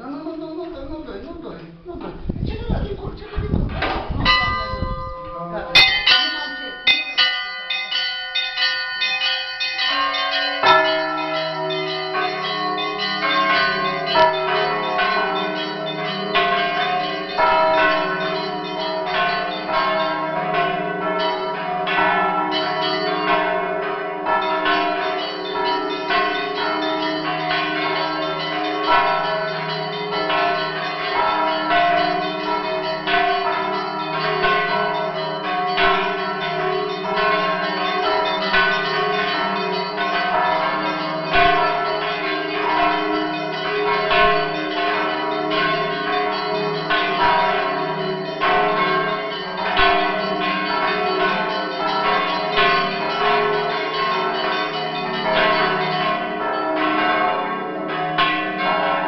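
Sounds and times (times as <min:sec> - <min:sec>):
deep large bells ringing: 0:04.0 - 0:59.0
small church bells rapid strikes: 0:04.1 - 0:59.0.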